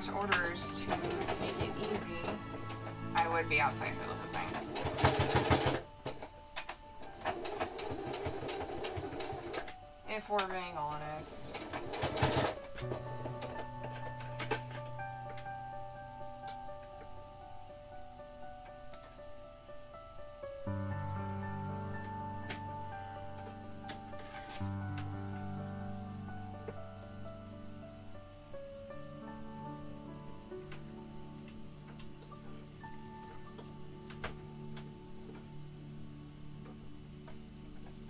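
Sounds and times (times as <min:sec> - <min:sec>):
sewing machine stitching: 0:00.0 - 0:02.8, 0:04.0 - 0:06.2, 0:07.1 - 0:09.7, 0:11.4 - 0:14.7.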